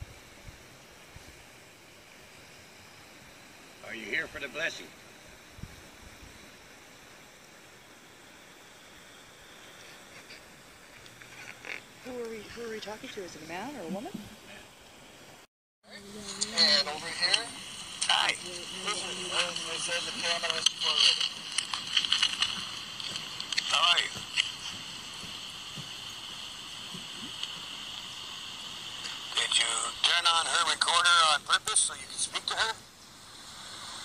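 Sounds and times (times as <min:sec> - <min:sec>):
radio static hiss: 0:00.0 - 0:34.0
chopped voice fragments: 0:16.0 - 0:22.5.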